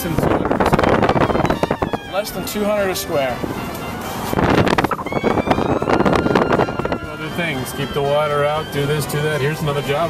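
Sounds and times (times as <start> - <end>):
wind noise on microphone: 0.0 - 9.2
road noise of moving car: 0.0 - 10.0.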